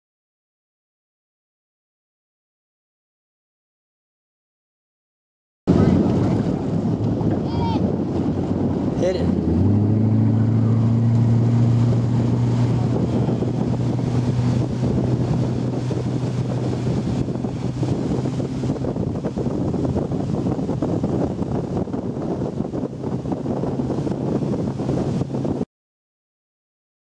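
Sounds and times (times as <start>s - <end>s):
boat motor humming: 5.7s - 25.6s
rushing water: 5.7s - 25.6s
wind buffeting microphone: 5.7s - 25.6s.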